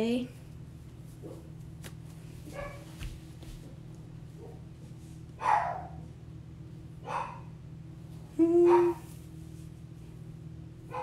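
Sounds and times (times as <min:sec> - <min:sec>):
low hum: 0:00.0 - 0:11.0
dog barking: 0:02.6 - 0:02.8, 0:05.4 - 0:06.0, 0:07.0 - 0:07.5, 0:08.7 - 0:09.0.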